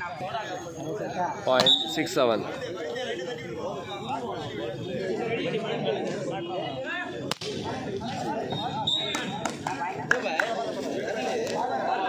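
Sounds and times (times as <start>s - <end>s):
crowd chatter: 0.0s - 12.0s
men's voices: 0.0s - 12.0s.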